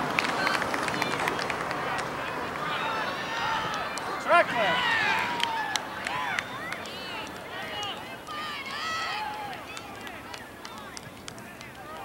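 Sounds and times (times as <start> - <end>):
outdoor background noise: 0.0 - 12.0
distant shouts and calls: 0.3 - 12.0.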